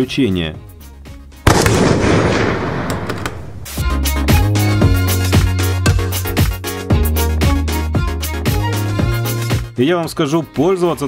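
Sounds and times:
loud boom effect: 1.5s - 3.8s.

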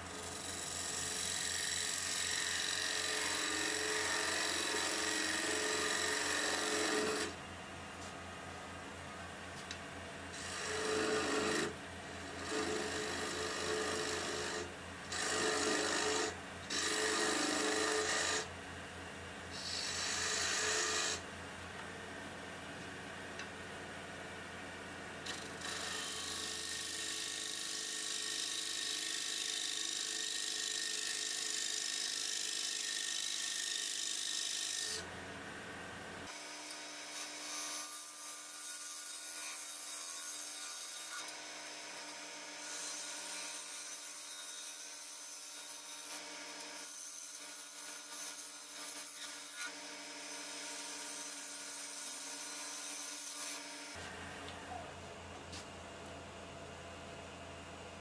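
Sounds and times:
turning tool cutting wood: 0.1s - 7.4s, 10.4s - 18.5s, 19.5s - 21.2s, 25.2s - 35.1s, 36.3s - 54.1s
wood lathe humming: 0.2s - 7.3s, 10.4s - 11.7s, 12.4s - 18.4s.

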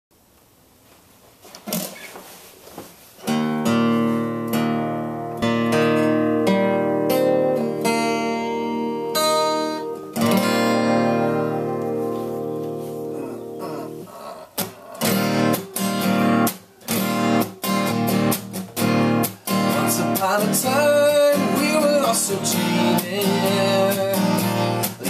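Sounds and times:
acoustic guitar chords strummed: 3.2s - 25.0s.

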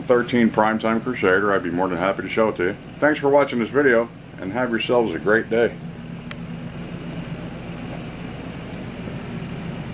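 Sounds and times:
low mechanical hum: 0.0s - 9.9s.

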